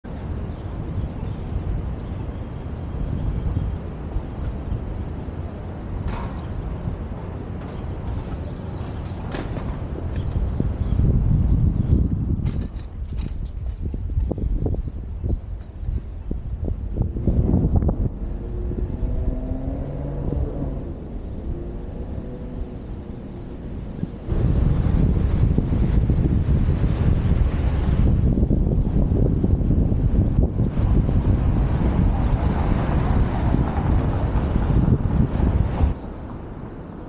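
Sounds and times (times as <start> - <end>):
light traffic noise: 0.0 - 11.6, 30.3 - 37.0
wind rumbling on microphone: 0.0 - 37.0.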